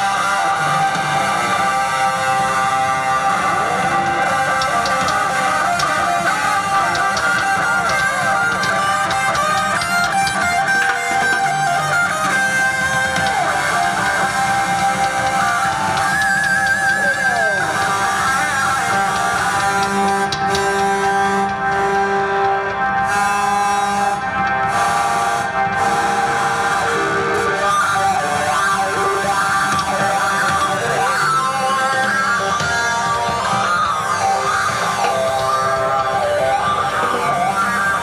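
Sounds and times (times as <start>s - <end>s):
live band through sound system: 0.0s - 38.0s.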